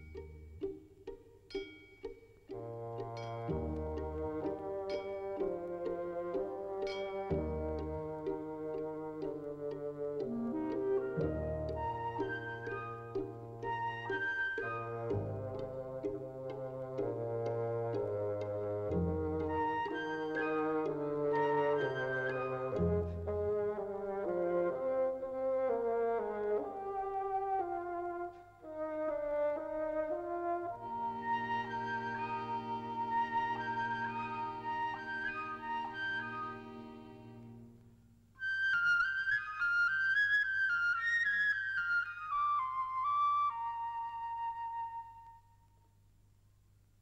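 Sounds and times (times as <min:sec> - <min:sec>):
flute-like melody: 0:00.0 - 0:01.2, 0:02.5 - 0:37.6, 0:38.4 - 0:45.8
brass melody: 0:02.5 - 0:37.8.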